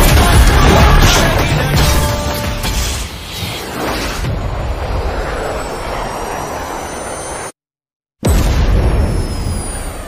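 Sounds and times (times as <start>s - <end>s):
jet aircraft roar: 3.4s - 7.6s.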